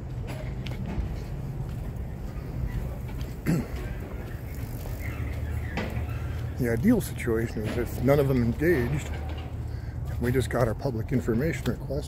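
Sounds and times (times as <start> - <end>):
street background rumble: 0.0 - 12.0.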